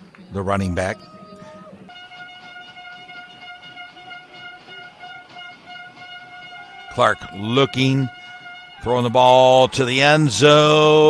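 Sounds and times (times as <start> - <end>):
stadium crowd noise: 0.0 - 11.0
horn holding long note: 0.8 - 11.0.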